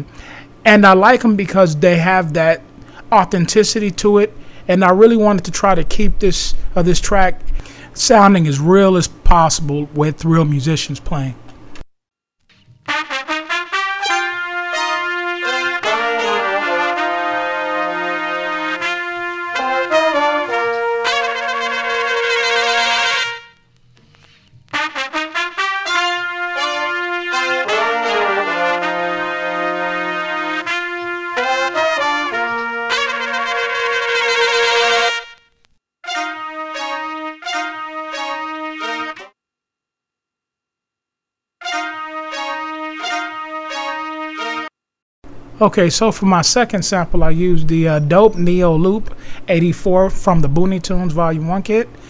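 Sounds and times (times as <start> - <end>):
short horn stabs: 12.8 - 23.7, 24.7 - 39.4, 41.6 - 44.7
soul horn section playing: 12.9 - 23.6, 24.7 - 39.4, 41.6 - 44.7.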